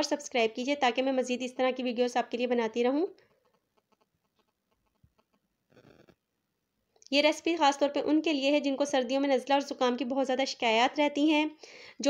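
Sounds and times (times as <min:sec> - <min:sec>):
woman's voice: 0:00.0 - 0:03.2, 0:07.1 - 0:12.0.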